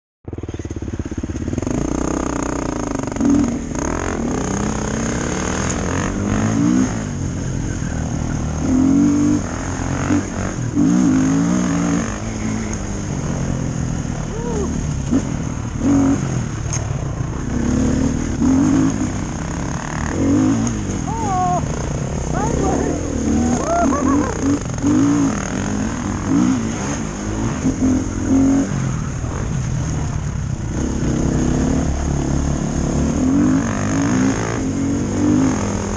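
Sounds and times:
dirt bike engine revving: 0.3 - 35.9.

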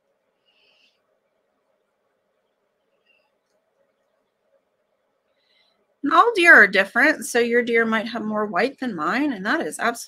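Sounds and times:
faint high scratchy sounds: 0.0 - 10.0.

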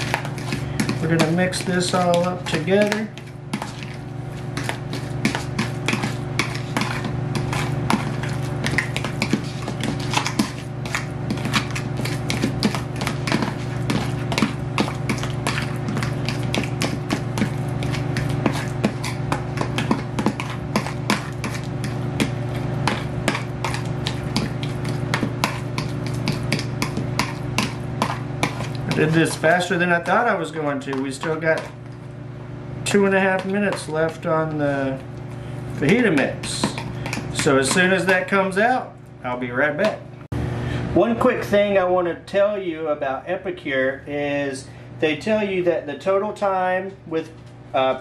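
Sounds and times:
fork tapping plastic tub: 0.0 - 3.9, 4.6 - 31.8, 35.8 - 38.4
fork mashing in plastic tub: 0.0 - 32.2, 32.8 - 38.9.

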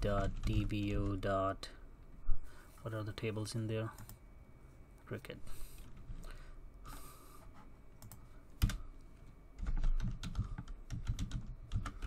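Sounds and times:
keyboard typing: 0.0 - 1.4, 8.0 - 8.8, 9.6 - 12.0.

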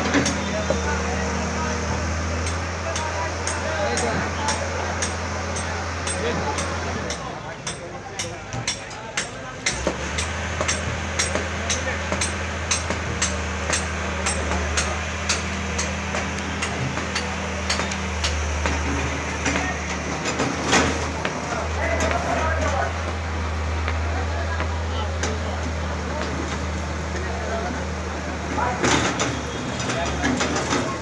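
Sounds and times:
crowd chatter: 0.0 - 31.0
excavator diesel engine running: 0.0 - 31.0.

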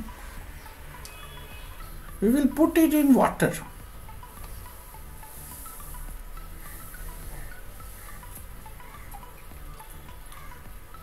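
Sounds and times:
low steady hum: 0.0 - 11.0
soft chime-like music: 0.0 - 11.0.

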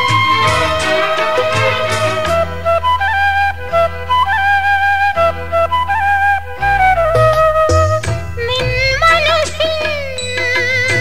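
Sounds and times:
sustained bass notes: 0.0 - 9.1
flute melody: 0.0 - 9.4.

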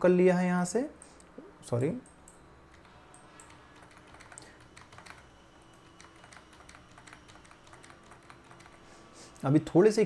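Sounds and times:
keyboard typing: 2.0 - 8.9.

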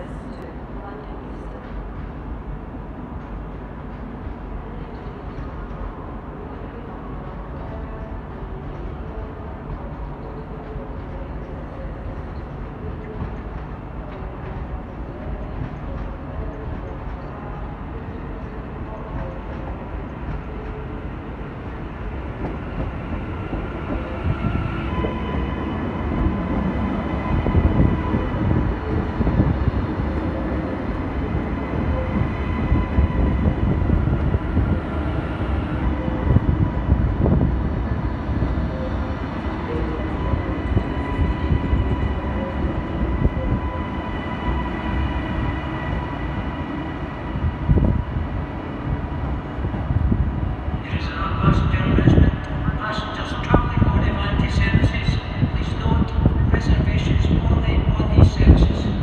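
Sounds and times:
steady train whine: 0.0 - 59.0
train wheels rumbling on rail: 0.0 - 59.0.

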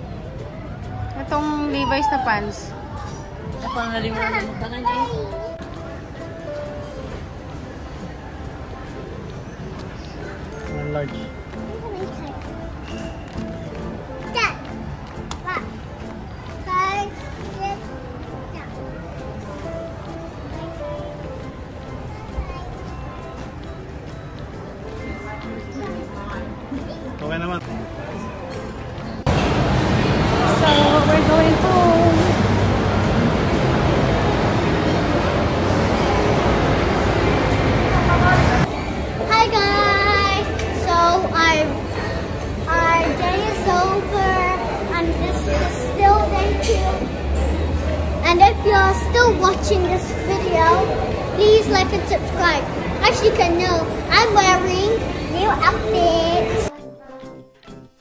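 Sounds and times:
background music: 0.0 - 58.0
girl singing: 39.3 - 41.7.

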